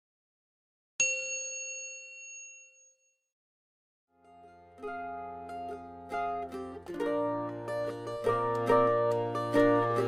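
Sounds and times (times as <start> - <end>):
bright bell ding: 1.0 - 3.2.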